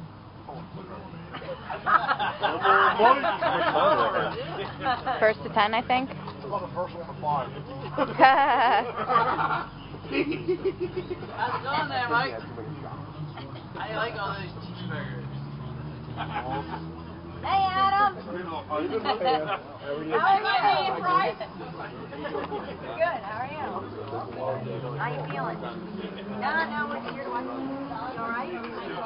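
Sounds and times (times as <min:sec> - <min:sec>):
background talk of people: 0:00.0 - 0:29.0.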